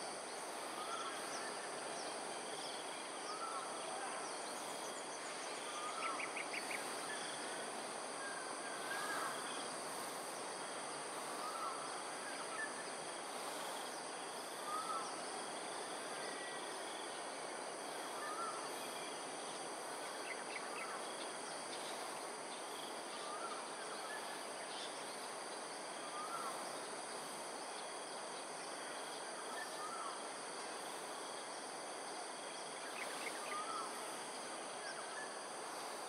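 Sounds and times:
background hiss: 0.0s - 36.0s
insects trilling: 0.0s - 36.0s.

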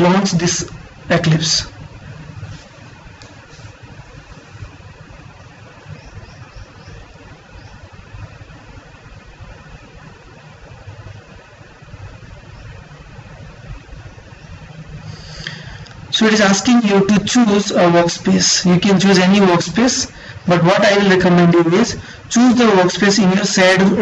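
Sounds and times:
faint hiss: 0.0s - 23.8s
low background rumble: 0.0s - 24.0s.

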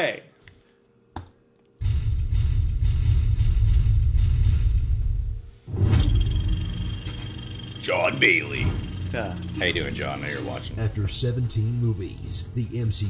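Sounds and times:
low cinematic hit: 1.8s - 11.4s.

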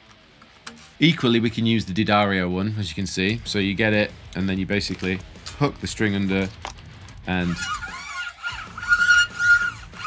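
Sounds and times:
guitar string squeaking: 7.4s - 10.0s.

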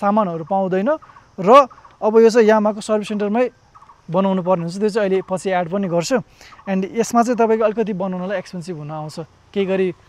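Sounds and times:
man talking quickly: 0.0s - 10.0s.

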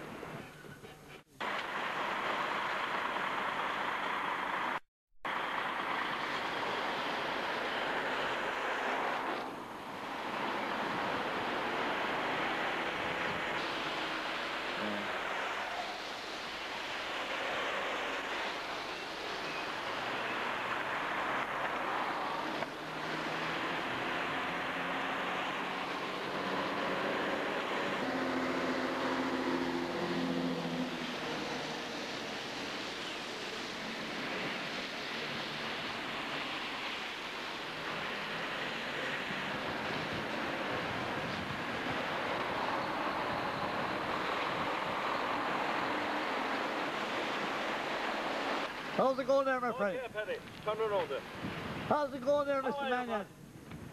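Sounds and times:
tyres swishing through water: 6.2s - 49.0s.

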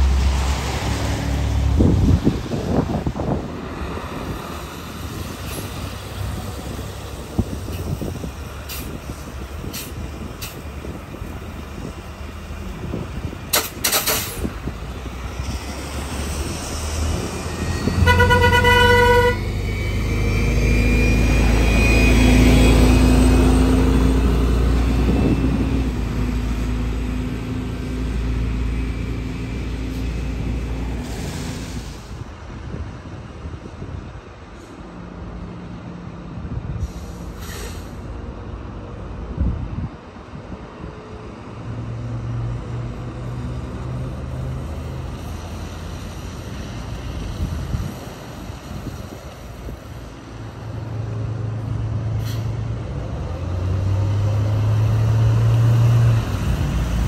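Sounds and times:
bus engine whining: 0.0s - 57.0s
buses driving on wet road: 0.0s - 57.0s
bus horn toot: 17.9s - 19.5s.

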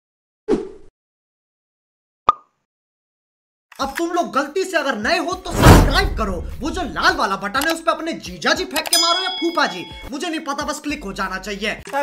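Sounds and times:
man speaking: 5.3s - 7.8s.

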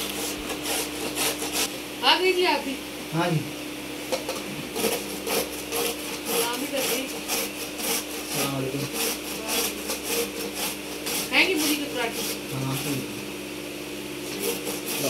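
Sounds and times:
radish grated on metal grater: 0.0s - 1.7s, 4.2s - 13.0s, 14.2s - 15.0s.

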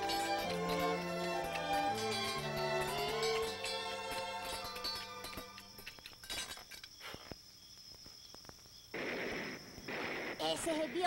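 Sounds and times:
distant sharp cracks: 8.9s - 11.0s.

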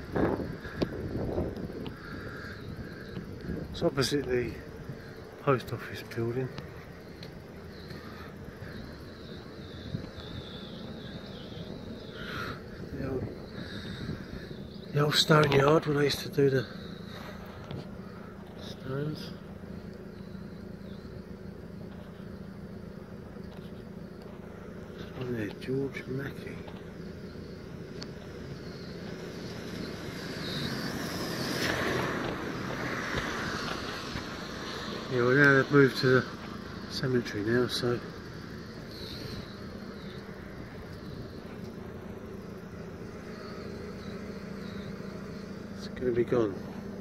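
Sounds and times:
street ambience rumble: 0.0s - 47.0s
vehicle passing: 28.9s - 47.0s.

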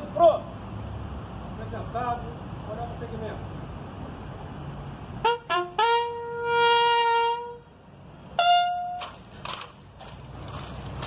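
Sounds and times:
bugle call: 5.2s - 7.6s, 8.4s - 9.2s.

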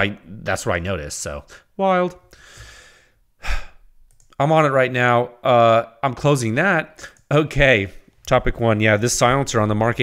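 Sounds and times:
man speaking: 0.0s - 2.3s, 4.4s - 10.0s
breathy exhale: 2.3s - 3.8s.

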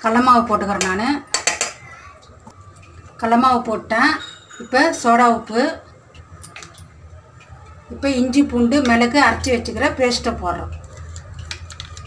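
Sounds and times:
steel cup clinking against bowl: 4.2s - 4.9s.

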